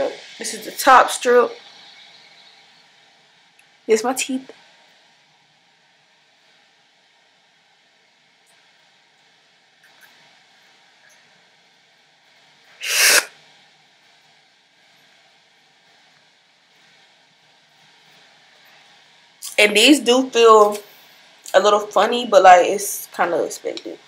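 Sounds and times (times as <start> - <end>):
person sharp exhale: 12.8 - 13.3.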